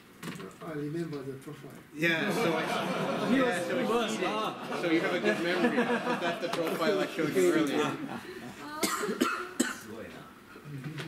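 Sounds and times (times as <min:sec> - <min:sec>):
person coughing: 0:08.7 - 0:09.9.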